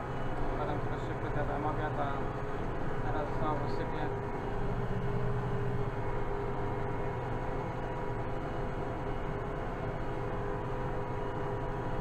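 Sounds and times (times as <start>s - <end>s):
steady whining tones: 0.0s - 12.0s
tractor diesel engine running: 0.0s - 12.0s.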